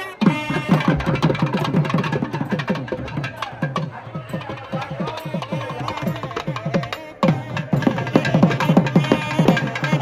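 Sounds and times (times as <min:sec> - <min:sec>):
barrel drums fast rhythm: 0:00.0 - 0:10.0
sharp high drum strokes: 0:00.0 - 0:10.0.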